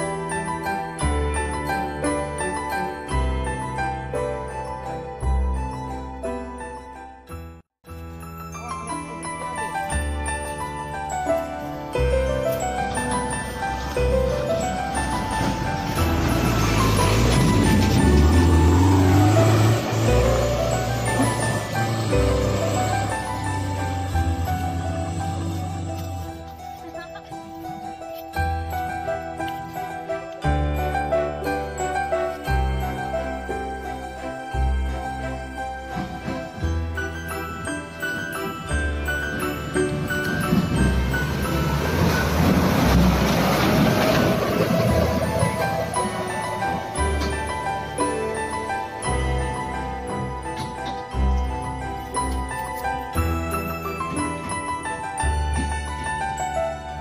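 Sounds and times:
background music: 0.0s - 57.0s
dump truck diesel engine passing: 12.0s - 26.8s, 31.2s - 54.2s
truck body rattling: 12.3s - 27.2s, 35.4s - 56.4s.

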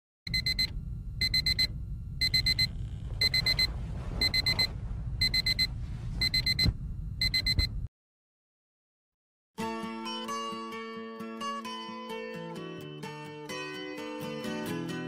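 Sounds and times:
electronic alarm beeping: 0.3s - 7.7s
steady low rumble: 0.4s - 7.9s
bedding rustling: 3.2s - 6.4s.

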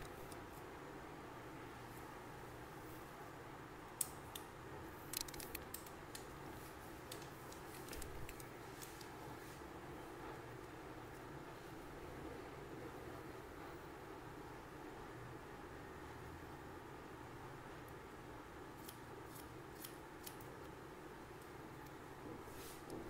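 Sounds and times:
faint room hum: 0.0s - 23.0s
scissors snipping hair: 18.8s - 20.7s.

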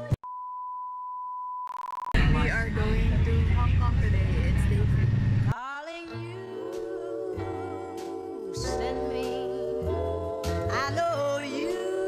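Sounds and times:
electronic beep tone: 0.3s - 2.2s
loud low rumble: 2.2s - 5.5s
music: 5.6s - 12.0s.

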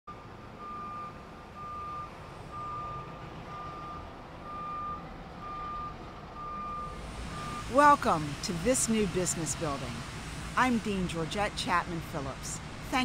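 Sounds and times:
truck back-up alarm beeping: 0.1s - 12.4s.

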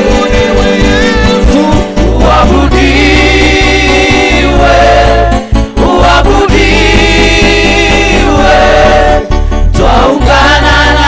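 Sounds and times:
backing singers: 0.0s - 11.0s
instrumental accompaniment: 0.0s - 11.0s.

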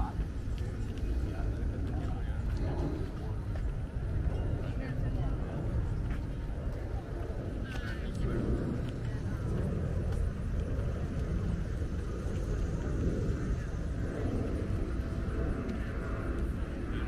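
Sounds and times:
faint voices: 0.0s - 17.0s
flickering low rumble: 0.0s - 17.0s.

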